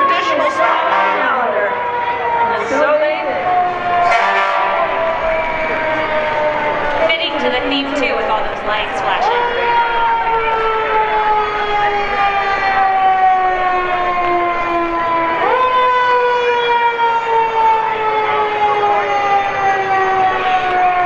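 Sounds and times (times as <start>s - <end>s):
fire truck siren: 0.0s - 21.0s.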